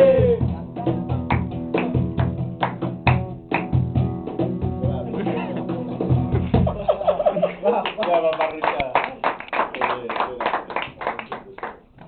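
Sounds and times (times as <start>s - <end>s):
acoustic guitar strumming: 0.0s - 6.7s.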